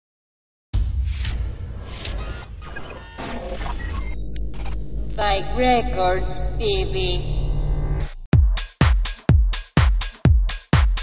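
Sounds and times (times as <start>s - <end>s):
stuttering digital noise bursts: 2.1s - 5.2s
deep bass rumble: 4.3s - 8.3s.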